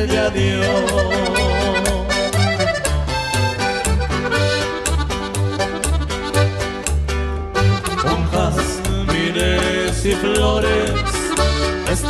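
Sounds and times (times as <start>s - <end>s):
accordion melody: 0.0s - 12.0s
bass notes on steady beat: 0.0s - 12.0s.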